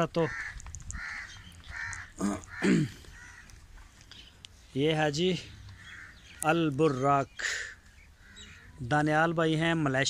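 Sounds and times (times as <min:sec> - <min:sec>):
crows cawing: 0:00.1 - 0:04.0, 0:05.6 - 0:08.9.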